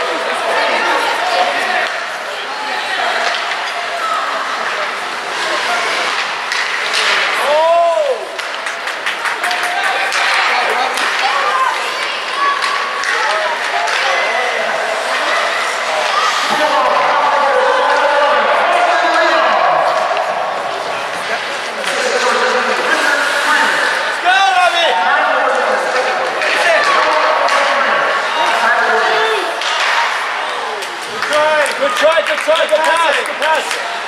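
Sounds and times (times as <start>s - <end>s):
spectators chattering and calling out: 0.0s - 34.0s
hockey sticks and puck knocking boards: 6.0s - 14.4s, 19.1s - 24.6s, 25.5s - 28.6s, 29.6s - 34.0s.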